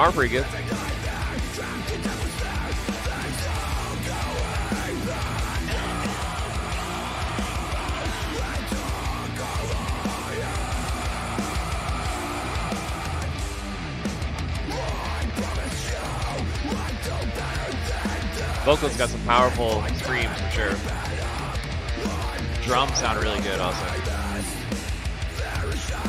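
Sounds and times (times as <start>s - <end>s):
metalcore song: 0.0s - 26.0s
screamed vocals: 0.9s - 13.4s.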